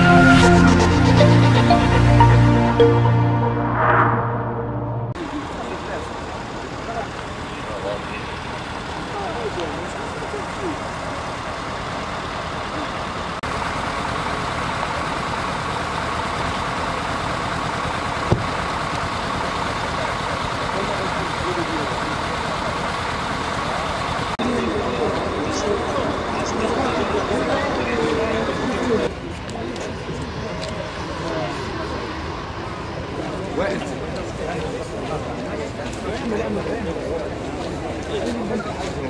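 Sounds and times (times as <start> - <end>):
vehicle engines idling: 5.1 - 39.0.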